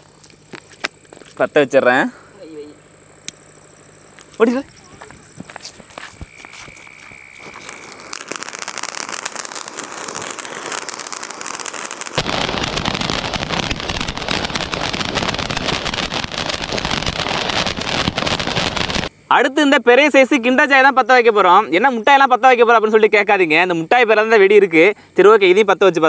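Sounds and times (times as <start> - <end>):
firework fuse sputtering: 2.9 - 19.1
firework crackling: 3.2 - 19.1
fountain firework spraying sparks: 4.4 - 19.1.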